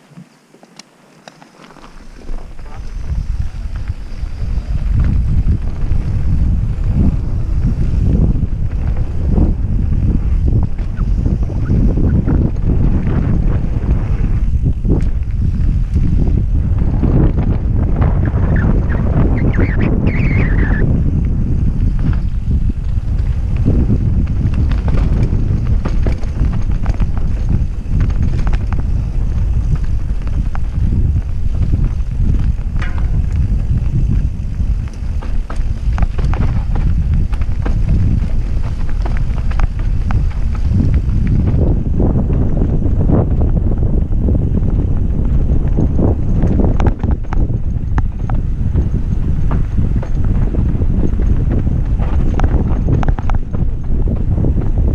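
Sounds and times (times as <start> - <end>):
wind rumbling on microphone: 0.0 - 54.9
bike clattering over bumps: 1.0 - 54.9.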